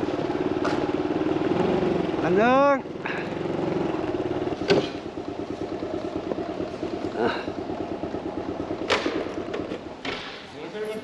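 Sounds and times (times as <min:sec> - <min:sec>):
motorcycle engine idling: 0:00.0 - 0:11.0.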